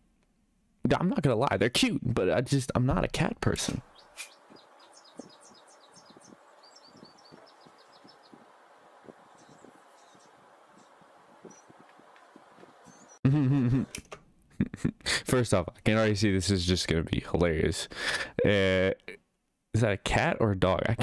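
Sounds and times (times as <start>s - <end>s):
background hiss: 1.6s - 20.0s
small birds chirping: 3.4s - 13.2s.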